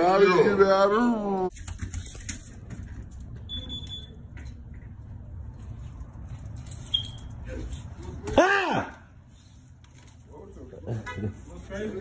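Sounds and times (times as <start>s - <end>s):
high electronic beep: 3.5s - 4.2s.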